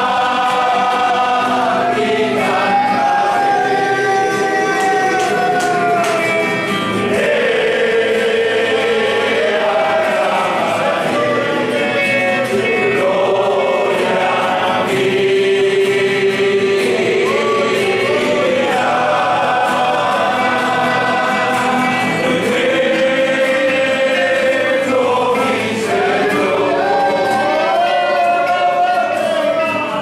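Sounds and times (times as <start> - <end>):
congregation singing a hymn: 0.0 - 30.0
strummed guitars: 0.0 - 30.0.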